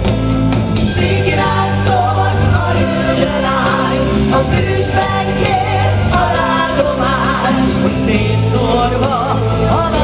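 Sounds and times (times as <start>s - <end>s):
musical accompaniment with bass: 0.0s - 10.0s
people singing in harmony: 0.8s - 10.0s.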